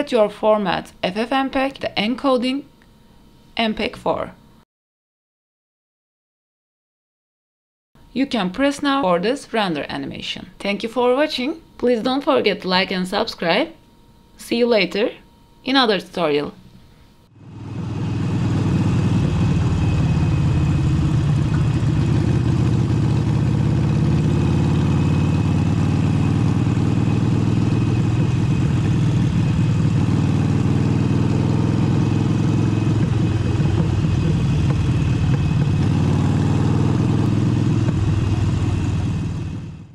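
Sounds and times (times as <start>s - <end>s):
motorcycle engine cruising: 17.3s - 39.9s.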